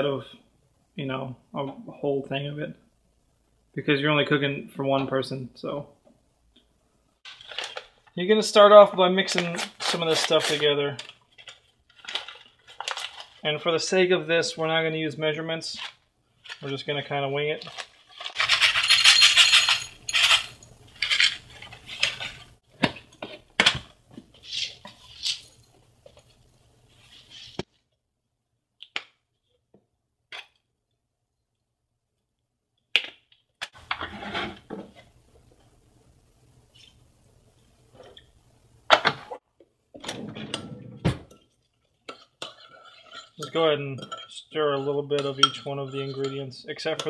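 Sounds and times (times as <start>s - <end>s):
paper packet rustling: 7.3s - 8.2s, 9.3s - 13.4s, 17.6s - 19.0s.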